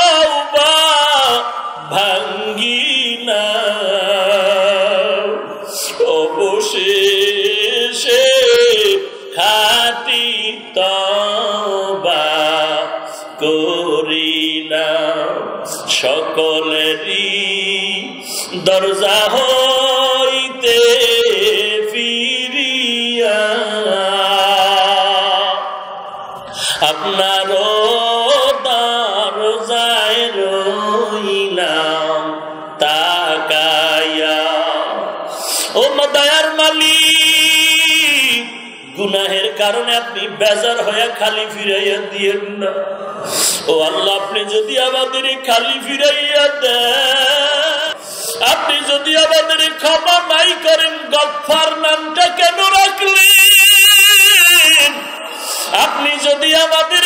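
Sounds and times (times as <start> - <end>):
man chanting melodically: 0.0 - 57.0.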